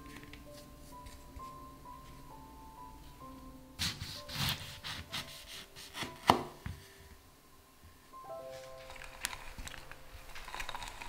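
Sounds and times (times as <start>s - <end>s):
knife cutting a lemon: 3.8s - 6.6s.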